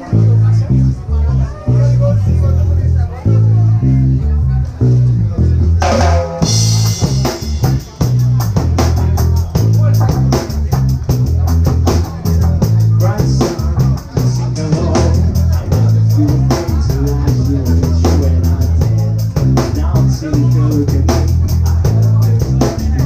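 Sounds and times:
electric bass line: 0:00.0 - 0:23.0
drum kit with cymbal crash: 0:05.8 - 0:23.0.

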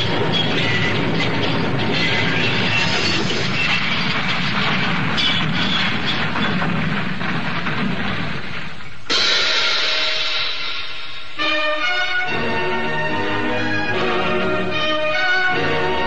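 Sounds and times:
dense noisy din: 0:00.0 - 0:16.0
held orchestral chords: 0:09.1 - 0:16.0.

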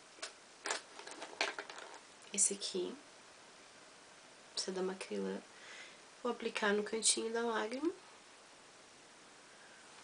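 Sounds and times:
makeup brushes and cases clicking: 0:00.2 - 0:02.0.

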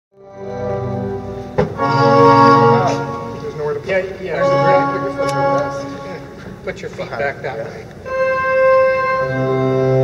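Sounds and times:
pipe organ chords: 0:00.2 - 0:06.7, 0:07.9 - 0:10.0
people talking: 0:02.7 - 0:07.9.

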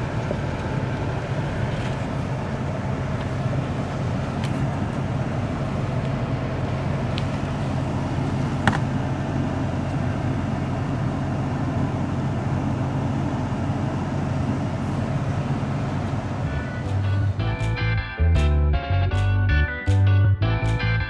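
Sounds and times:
truck engine running: 0:00.0 - 0:21.0.

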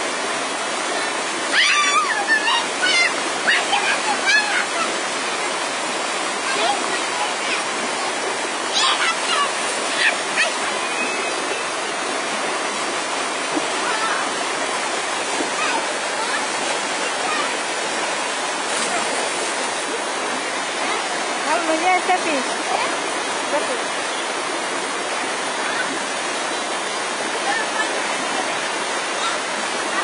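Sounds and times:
water rushing down cascade: 0:00.0 - 0:30.0
voices calling out: 0:00.9 - 0:24.5.

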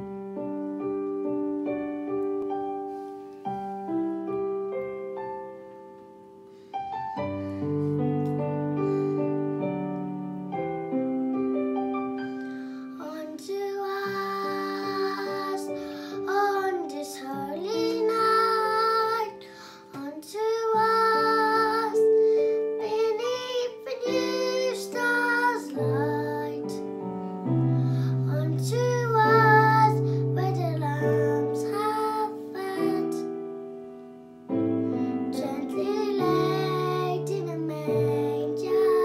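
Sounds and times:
piano accompaniment: 0:00.0 - 0:39.0.

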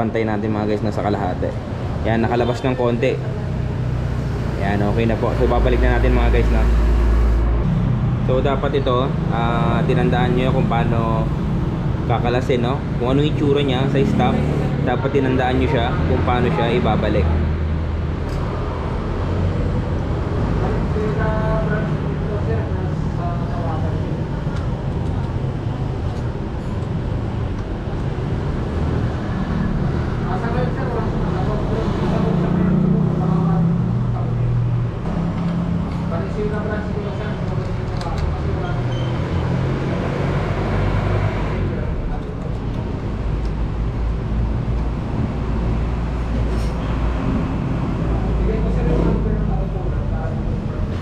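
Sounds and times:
low rumble of road traffic: 0:00.0 - 0:51.0.

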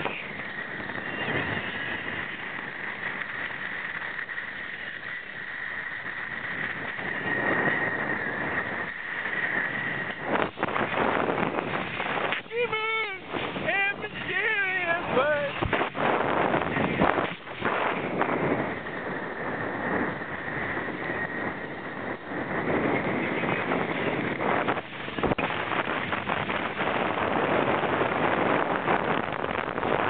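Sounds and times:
boat engine running: 0:00.0 - 0:30.0
steady high whine: 0:00.0 - 0:30.0
water and wind rushing: 0:00.0 - 0:30.0
person yelling high-pitched: 0:12.5 - 0:15.5.

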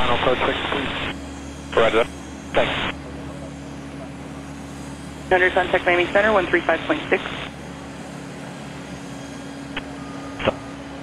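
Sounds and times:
radio channel hiss and hum: 0:00.0 - 0:04.3, 0:05.3 - 0:07.6, 0:09.7 - 0:10.6
keyed radio transmission burst: 0:01.8 - 0:03.0, 0:05.3 - 0:07.5, 0:10.4 - 0:10.6
controller speaking over radio: 0:05.3 - 0:07.5.

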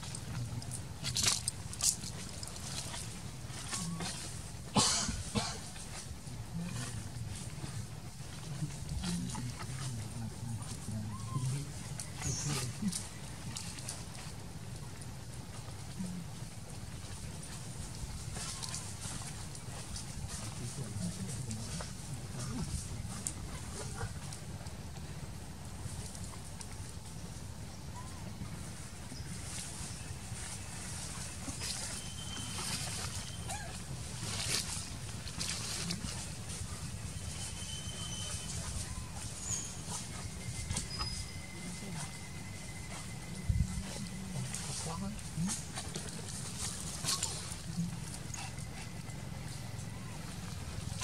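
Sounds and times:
crackles on dry leaves: 0:00.0 - 0:51.0
low outdoor rumble: 0:00.0 - 0:51.0
low uneven murmur: 0:00.0 - 0:51.0.

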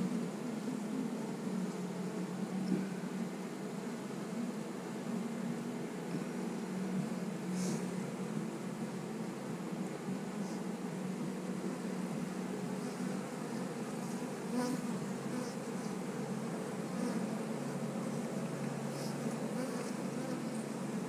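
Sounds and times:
bees buzzing: 0:10.1 - 0:21.0.

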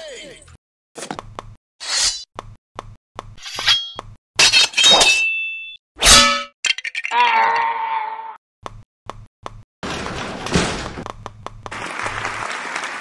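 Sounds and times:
metallic sword clangs: 0:03.4 - 0:06.5.

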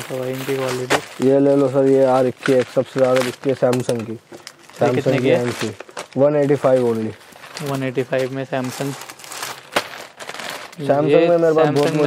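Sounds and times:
plastic packet crinkling: 0:00.0 - 0:12.0.

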